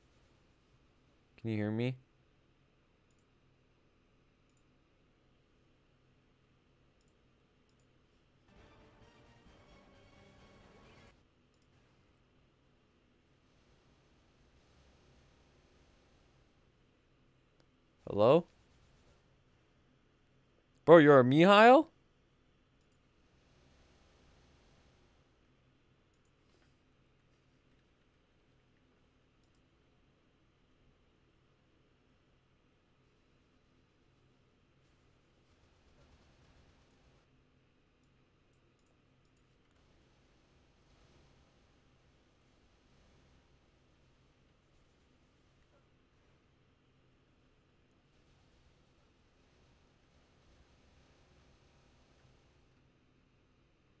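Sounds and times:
faint mouse clicks: 0:03.0 - 0:03.3, 0:04.4 - 0:04.7, 0:07.0 - 0:08.0, 0:22.8 - 0:23.0, 0:29.3 - 0:29.7, 0:38.0 - 0:39.8.

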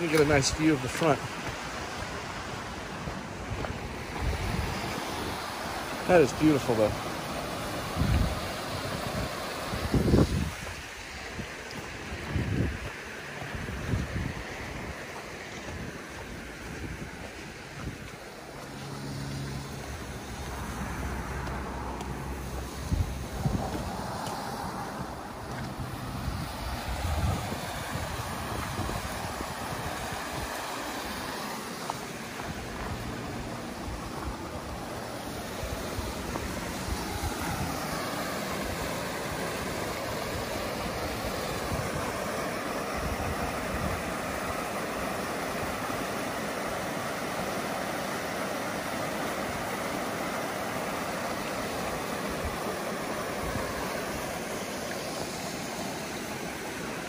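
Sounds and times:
creek water rushing over rocks: 0:00.0 - 0:57.0.

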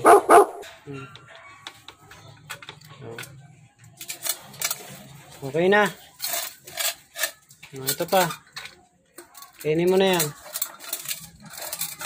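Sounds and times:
dog barking: 0:00.0 - 0:00.7.

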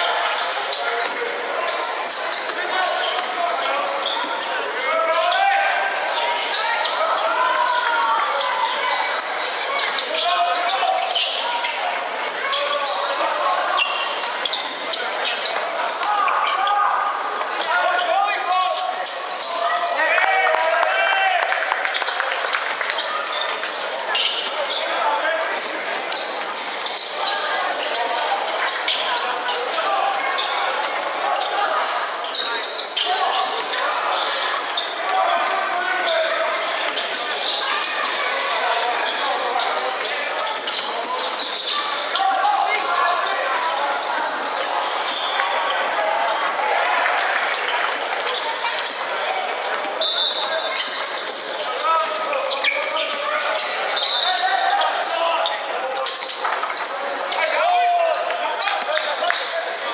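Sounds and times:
chatter of voices: 0:00.0 - 0:59.9.

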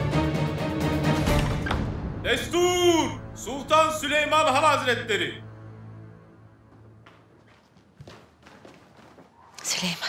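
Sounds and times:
soft footsteps on floor: 0:06.6 - 0:09.8.

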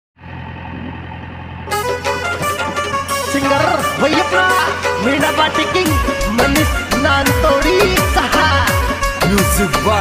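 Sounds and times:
backhoe diesel engine running: 0:00.2 - 0:10.0
music: 0:01.7 - 0:10.0.

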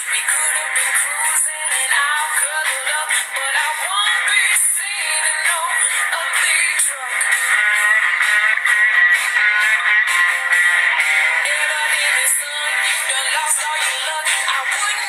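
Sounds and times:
person singing: 0:00.0 - 0:15.0.

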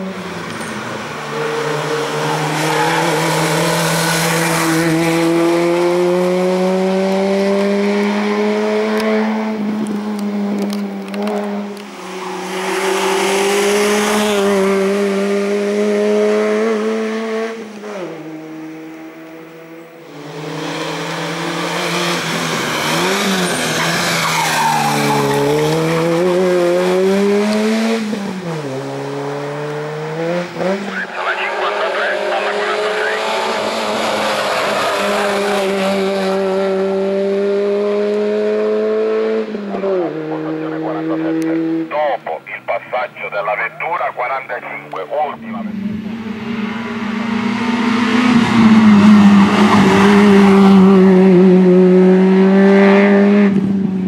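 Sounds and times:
race car engine at high revs: 0:00.0 - 0:54.0.

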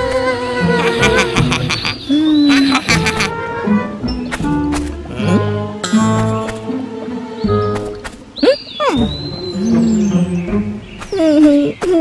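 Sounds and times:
light cartoon background music: 0:00.0 - 0:12.0.

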